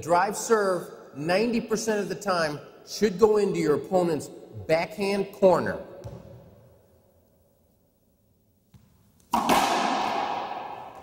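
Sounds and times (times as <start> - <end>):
racquet hitting ball loud crack: 6.0 - 6.8, 8.7 - 11.0.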